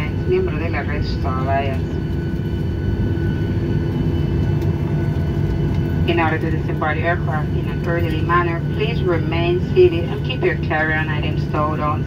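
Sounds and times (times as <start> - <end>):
faint engine whine: 0.0 - 12.0
low rumble of jet engines: 0.0 - 12.0.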